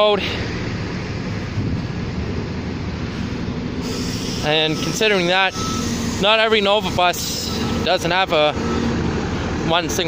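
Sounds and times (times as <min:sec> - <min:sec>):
bus engines rumbling: 0:00.0 - 0:10.0
wind on microphone: 0:01.5 - 0:02.5.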